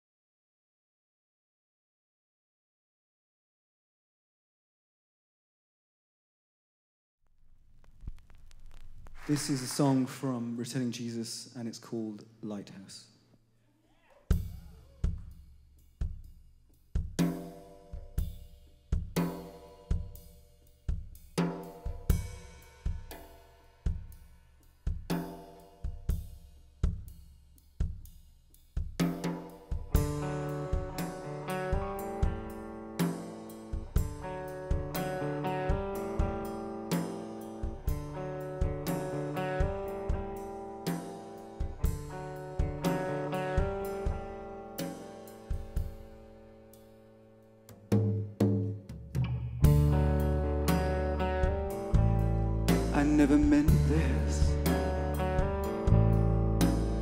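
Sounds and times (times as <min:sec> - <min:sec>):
drum kit beat: 0:14.3 - 0:46.2, 0:47.7 - 0:57.0
rock band playing: 0:29.0 - 0:46.4, 0:49.2 - 0:57.0.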